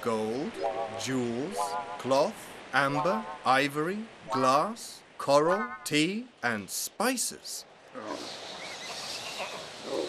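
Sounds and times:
camels and horses calling: 8.0 - 10.0.

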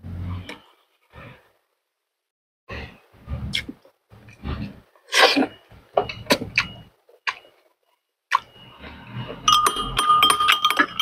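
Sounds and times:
person chewing: 8.3 - 8.5.

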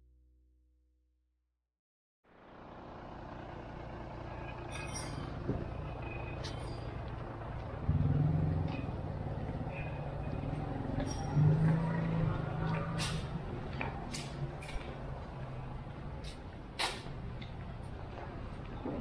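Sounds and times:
traffic noise: 2.3 - 19.0
vehicle engine humming: 2.3 - 19.0.

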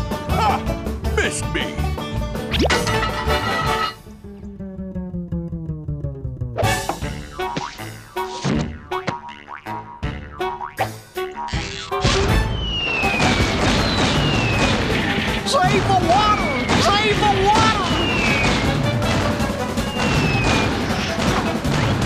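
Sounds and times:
cartoon music: 2.5 - 21.2
sharp hits: 12.0 - 22.0
falling whistle: 12.4 - 15.0, 16.2 - 18.8, 19.8 - 21.0
sliding whistles: 12.4 - 15.4, 16.1 - 18.9, 19.8 - 21.2.

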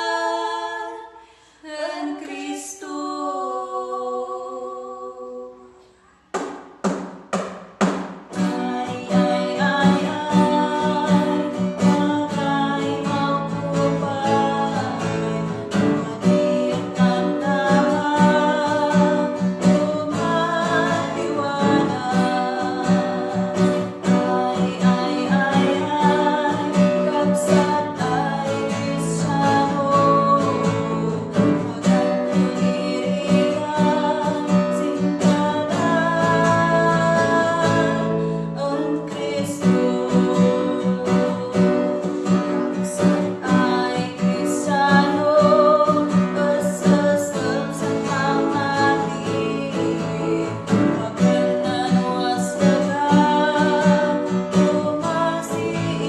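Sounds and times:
women singing gospel song: 0.0 - 5.9, 8.3 - 56.0
strummed acoustic guitar: 6.1 - 56.0.

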